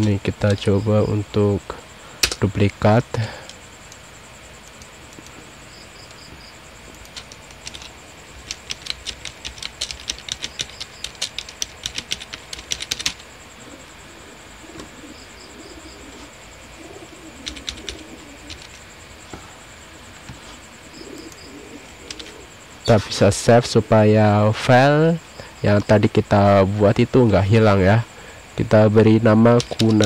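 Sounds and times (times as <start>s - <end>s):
high insect trill: 0.0s - 30.0s
typing on computer keyboard: 6.9s - 13.2s, 17.4s - 18.8s, 22.1s - 22.4s, 29.6s - 30.0s.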